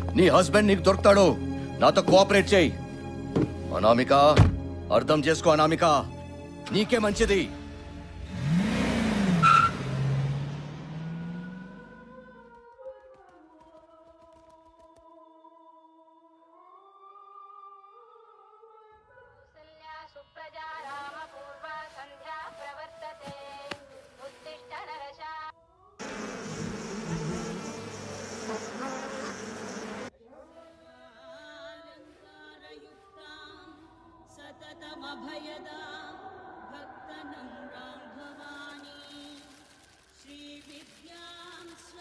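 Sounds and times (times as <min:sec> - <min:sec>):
car engine revving: 0:08.1 - 0:12.4, 0:26.0 - 0:30.1
night insects buzzing: 0:26.0 - 0:30.1.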